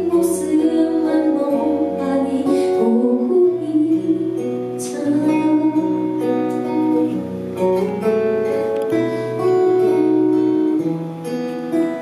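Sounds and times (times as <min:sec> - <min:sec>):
woman singing: 0:00.0 - 0:07.2
acoustic guitar strumming chords: 0:00.0 - 0:12.0.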